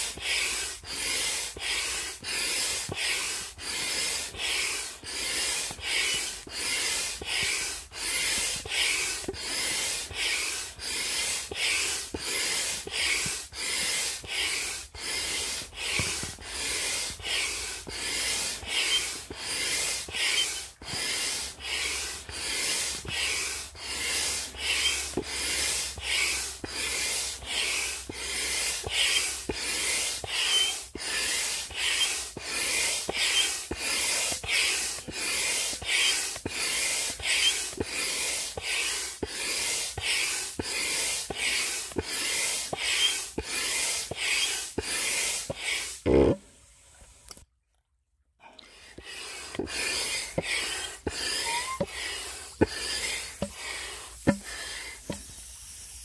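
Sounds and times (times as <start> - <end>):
hand pump hissing air: 0.0 - 46.4, 48.6 - 56.0.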